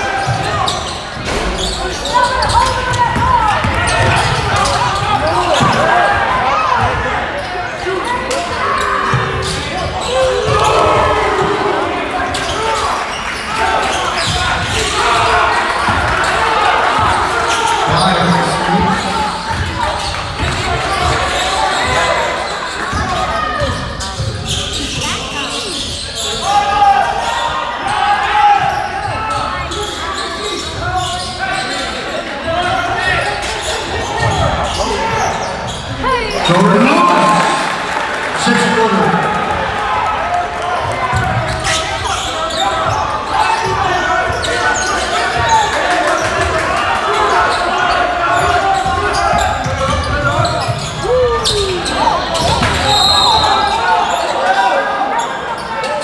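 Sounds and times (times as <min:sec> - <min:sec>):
spectators chattering: 0:00.0 - 0:56.0.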